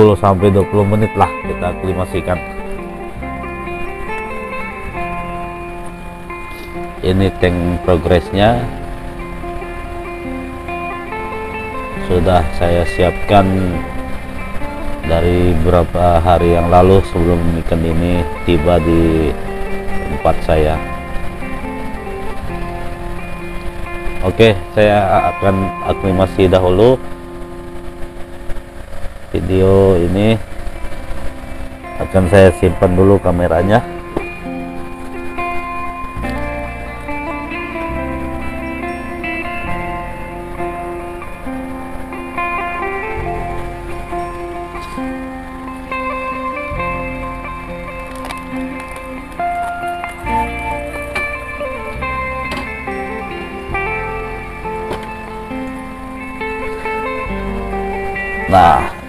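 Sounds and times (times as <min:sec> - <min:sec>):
instrumental background music: 0:00.0 - 0:59.0
motor humming: 0:00.0 - 0:59.0.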